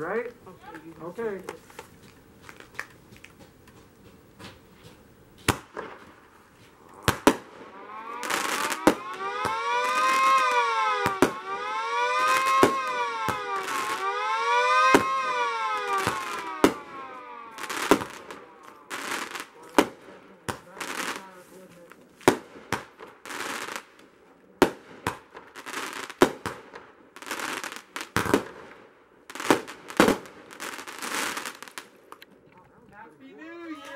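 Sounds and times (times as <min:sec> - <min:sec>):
fireworks cracking and banging: 0:00.0 - 0:32.4
two-tone siren wailing: 0:07.2 - 0:19.5.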